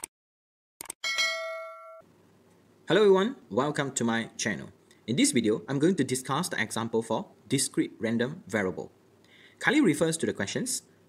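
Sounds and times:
notification bell ding: 1.0s - 2.0s.

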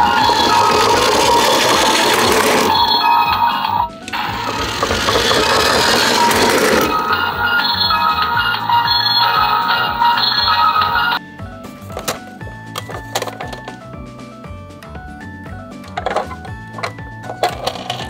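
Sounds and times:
toy electronic siren: 0.0s - 11.2s.

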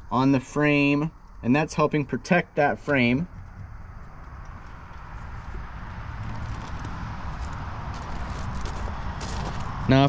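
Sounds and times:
low microphone rumble: 3.2s - 10.0s
footsteps crunching on gravel: 4.0s - 9.9s.

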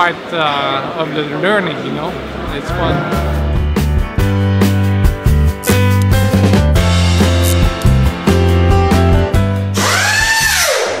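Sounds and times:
background music with drum beat: 2.5s - 10.4s.

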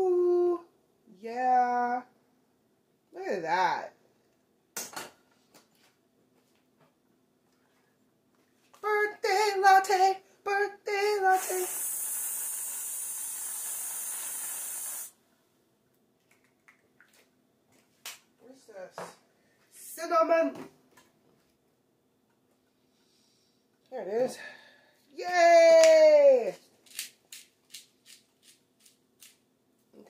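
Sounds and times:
whipped cream aerosol hissing: 11.2s - 15.2s.

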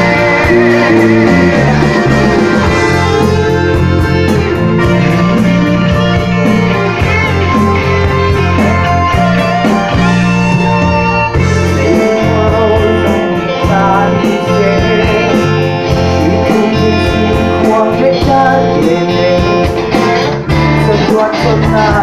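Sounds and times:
drum kit hits: 0.0s - 18.5s
bass guitar: 0.0s - 22.0s
electric guitars: 0.0s - 22.0s
person singing: 0.0s - 22.0s.

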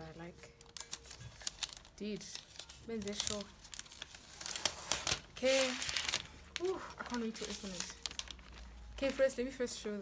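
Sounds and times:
plastic wrap crinkling: 0.3s - 9.8s.

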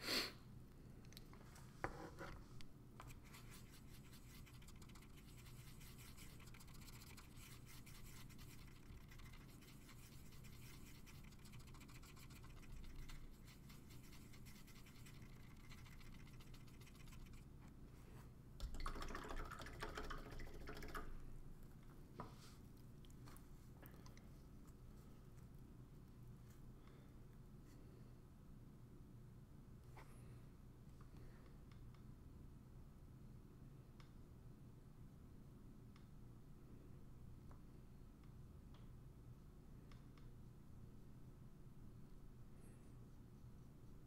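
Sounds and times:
faint scratching and rubbing: 1.4s - 18.4s.

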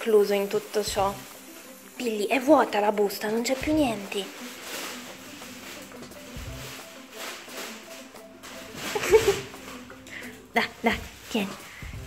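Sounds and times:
background music: 0.0s - 12.0s
plastic bag rustling: 0.0s - 12.0s.

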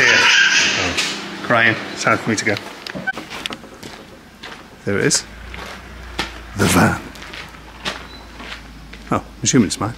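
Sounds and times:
footsteps on gravel: 2.6s - 9.2s.

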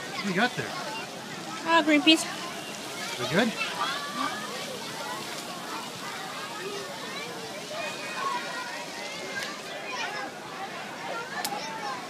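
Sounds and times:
children's voices overlapping: 0.0s - 12.0s
water splashing: 0.0s - 12.0s.

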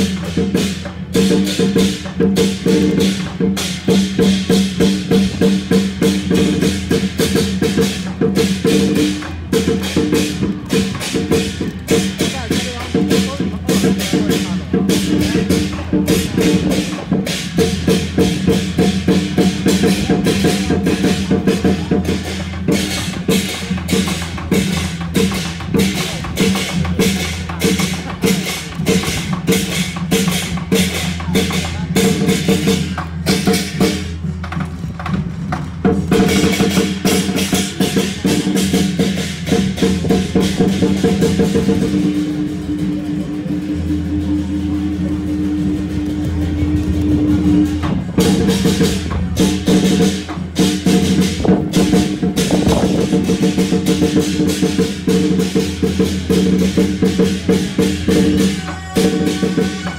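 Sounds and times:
big drum beaten quickly: 0.0s - 59.9s
cymbals crashing: 0.0s - 59.9s.

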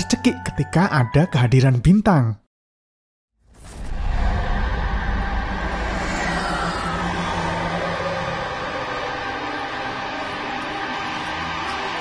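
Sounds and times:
deep rumble: 3.6s - 10.1s
horror film score drone: 3.7s - 12.0s.

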